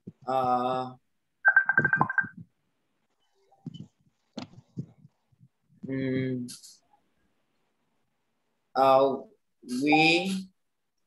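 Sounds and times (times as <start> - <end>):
rapidly pulsing electronic alert tone: 1.5 - 2.4.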